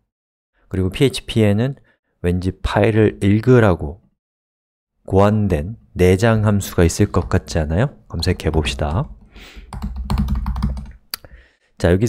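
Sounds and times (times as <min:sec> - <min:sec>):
fast typing on keyboard: 0:08.2 - 0:11.0.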